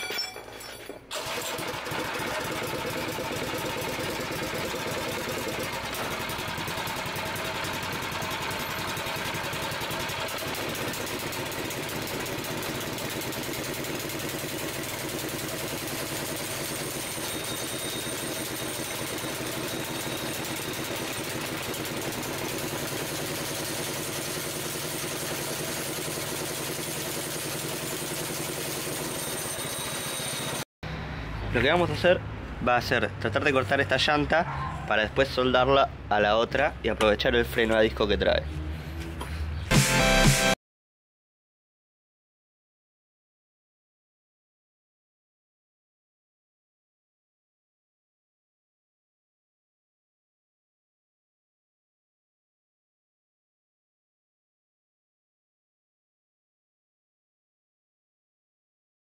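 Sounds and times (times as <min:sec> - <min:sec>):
small engine idling: 0:01.1 - 0:30.6.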